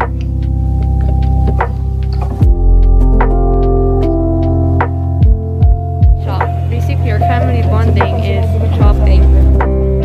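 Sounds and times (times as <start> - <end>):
low synth bass chord: 0.0 - 10.0
deep kick drum hits: 2.4 - 3.9
voice: 6.2 - 9.3.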